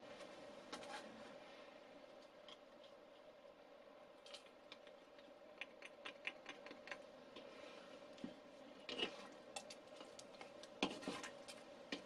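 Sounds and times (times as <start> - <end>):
spatula scraping dough: 8.8 - 10.2, 10.8 - 12.0.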